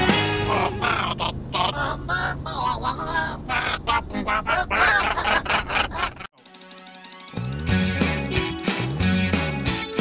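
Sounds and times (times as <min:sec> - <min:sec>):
creatures chattering: 0:00.5 - 0:05.0.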